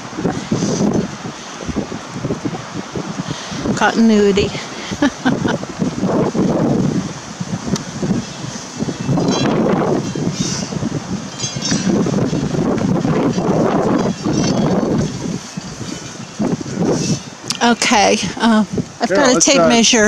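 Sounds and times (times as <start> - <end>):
wind on microphone: 0.0 - 20.0.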